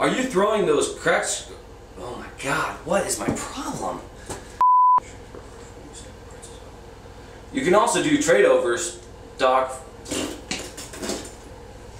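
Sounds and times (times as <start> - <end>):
censor bleep: 4.6 - 5.0.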